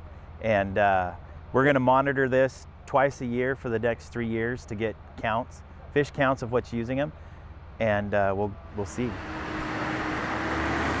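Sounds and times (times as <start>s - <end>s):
faint steady hum: 0.0s - 8.9s
road traffic rushing: 8.5s - 11.0s
car passing: 8.7s - 11.0s.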